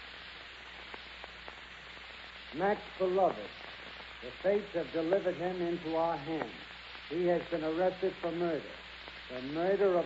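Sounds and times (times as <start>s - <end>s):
recording hiss and low hum: 0.0s - 10.0s.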